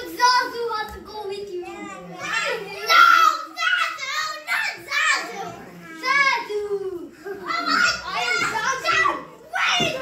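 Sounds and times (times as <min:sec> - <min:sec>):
young children calling and chattering: 0:00.0 - 0:10.0.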